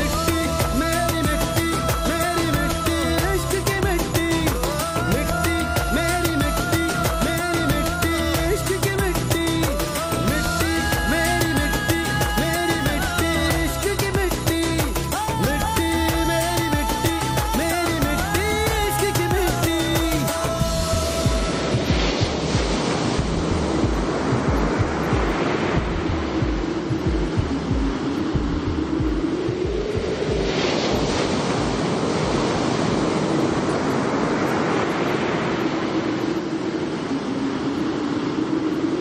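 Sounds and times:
sea surf washing: 0.0s - 39.0s.

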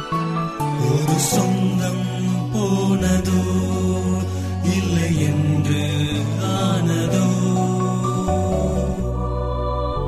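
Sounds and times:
slow music of held notes: 0.0s - 10.0s.

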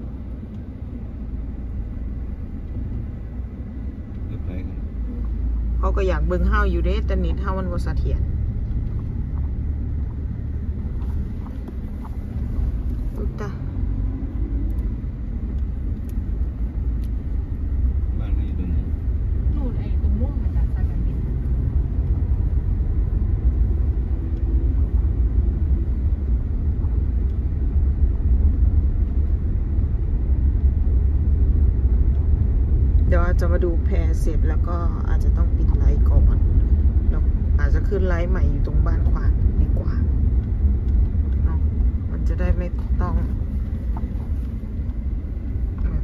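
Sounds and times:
car engine and road noise: 0.0s - 46.0s.

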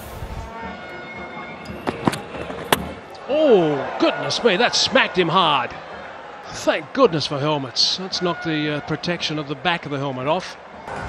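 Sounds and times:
stadium crowd noise: 0.5s - 11.0s
cricket ball striking helmet: 1.8s - 3.0s.

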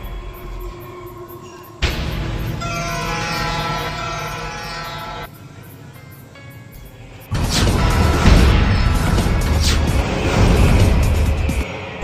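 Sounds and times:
suspense music low drone: 0.0s - 12.0s
sudden loud music hit: 1.8s - 5.3s, 7.3s - 11.8s.

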